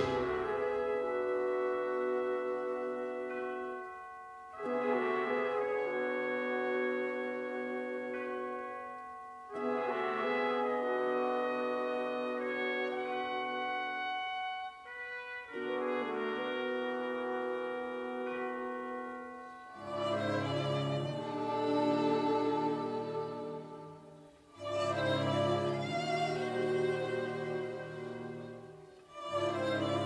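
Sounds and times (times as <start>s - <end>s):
orchestral held chords: 0.0s - 30.0s.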